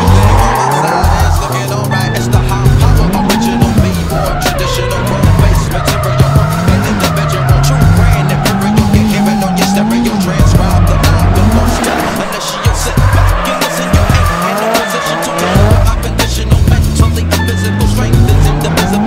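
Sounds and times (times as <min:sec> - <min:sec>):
car engine revving: 0:00.0 - 0:19.0
music: 0:00.0 - 0:19.0
tyres squealing: 0:00.0 - 0:19.0.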